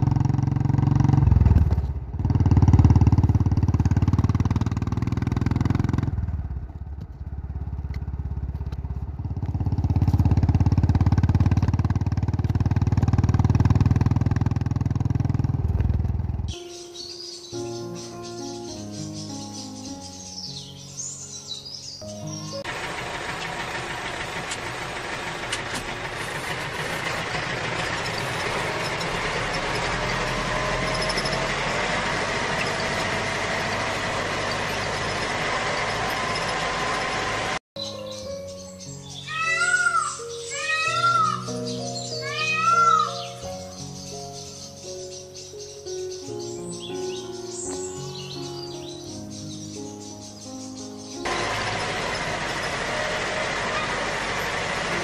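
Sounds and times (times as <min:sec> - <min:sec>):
motorcycle engine running: 0:00.0 - 0:16.5, 0:22.4 - 0:37.6, 0:51.2 - 0:55.0
noisy engine-like hum: 0:22.4 - 0:37.6, 0:51.2 - 0:55.0.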